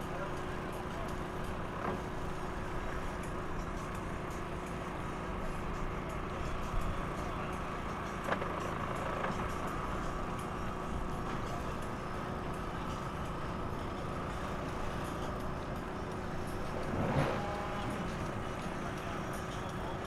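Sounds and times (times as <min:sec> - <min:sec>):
outboard motors idling: 0:00.0 - 0:20.0.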